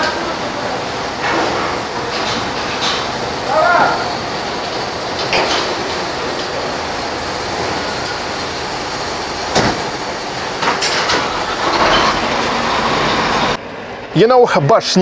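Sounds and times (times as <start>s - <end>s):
loading rack rushing noise: 0.0s - 13.6s.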